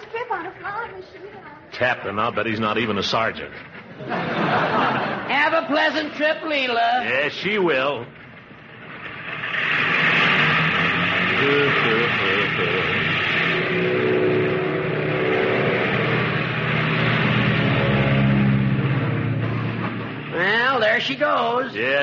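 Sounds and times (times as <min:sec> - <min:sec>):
airplane engines roaring: 0:07.0 - 0:22.0.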